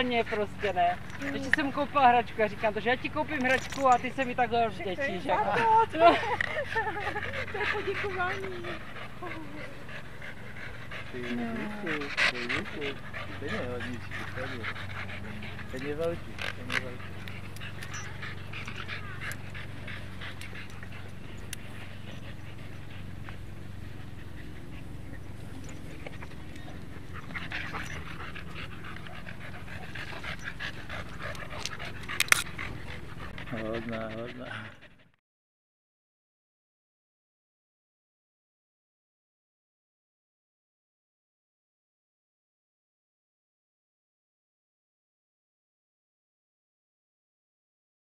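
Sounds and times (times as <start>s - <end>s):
dog panting: 0.0s - 35.2s
steady low hum: 0.0s - 35.2s
dog whining: 5.0s - 20.2s, 24.6s - 34.4s.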